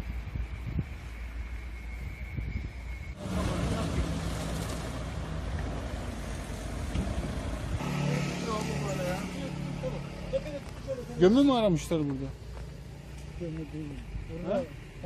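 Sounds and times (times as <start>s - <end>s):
vehicle engine idling: 3.2s - 15.0s.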